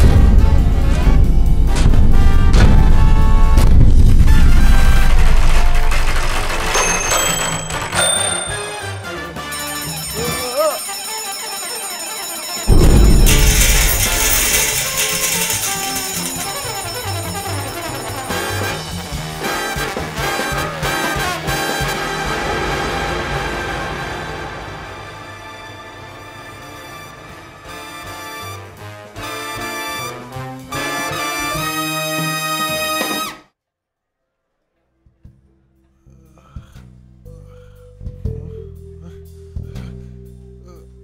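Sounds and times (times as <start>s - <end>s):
sudden loud hit: 0.0s - 5.6s, 12.7s - 15.0s
film score music: 0.0s - 33.4s.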